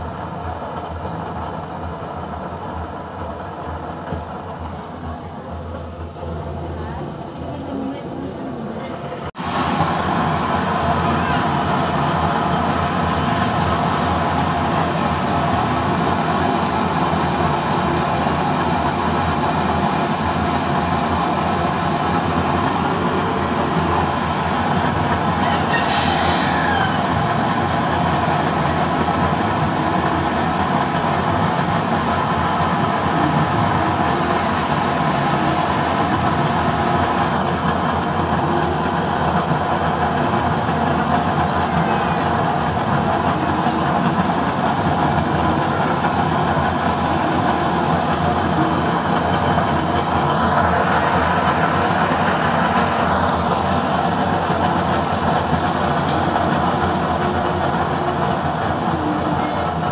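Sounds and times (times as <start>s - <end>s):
stove burner roaring: 0.0s - 59.9s.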